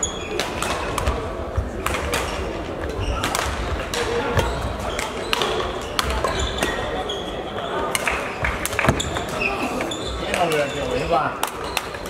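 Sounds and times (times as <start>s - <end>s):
voices in hall: 0.0s - 12.0s
racket hitting shuttlecock: 0.4s - 6.7s.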